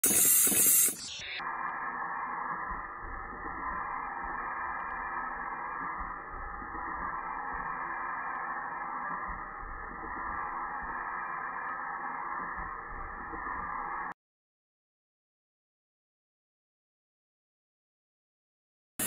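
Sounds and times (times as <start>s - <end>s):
stamping press hissing: 0.0s - 12.6s.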